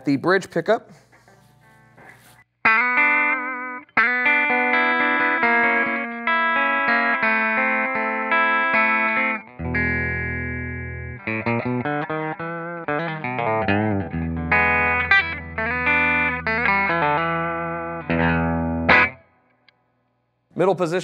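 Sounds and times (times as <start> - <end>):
clean electric guitar: 0.9 - 20.0.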